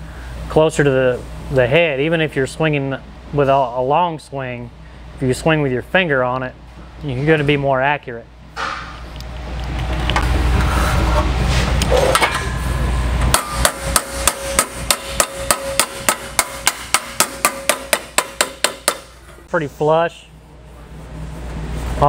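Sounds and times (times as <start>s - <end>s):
hammer tapping on metal: 13.3s - 19.2s.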